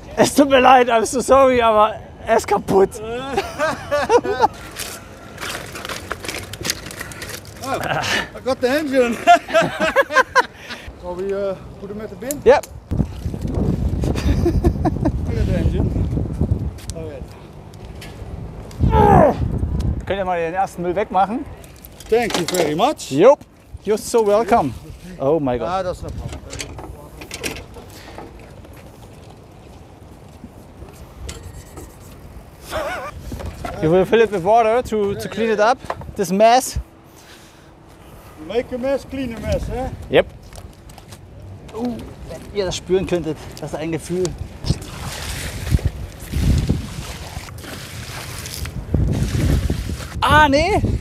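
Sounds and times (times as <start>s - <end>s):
wind buffeting microphone: 12.7s - 22.3s, 23.6s - 37.0s, 38.7s - 40.8s, 41.6s - 51.0s
water splashing on paving stones: 43.6s - 50.2s.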